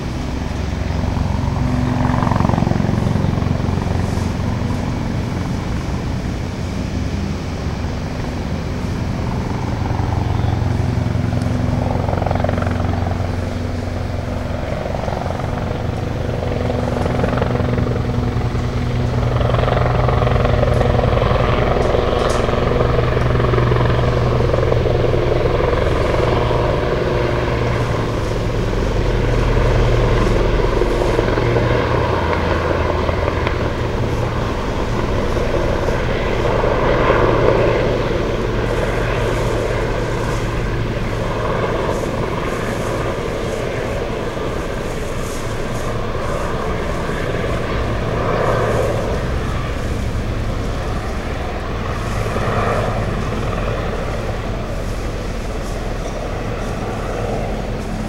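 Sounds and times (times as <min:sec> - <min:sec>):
low mechanical drone: 0:00.0 - 0:58.0.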